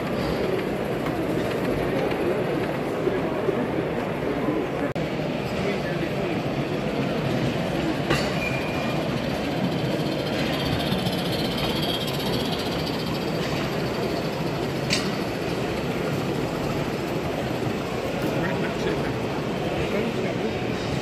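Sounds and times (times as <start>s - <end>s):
model steam train running: 0.0s - 21.0s.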